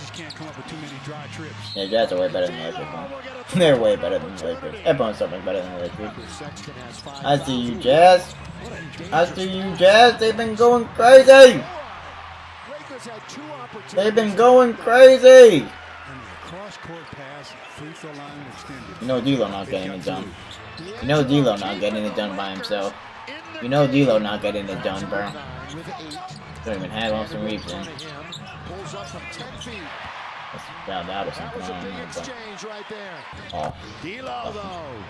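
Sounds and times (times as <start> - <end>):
commentator talking: 0.0 - 11.9, 12.6 - 35.0
crowd noise: 0.0 - 35.0.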